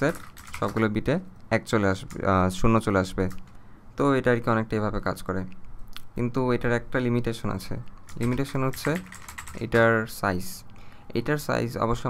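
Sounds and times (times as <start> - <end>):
computer keyboard typing: 0.0 - 1.1, 1.7 - 3.6, 8.0 - 10.1.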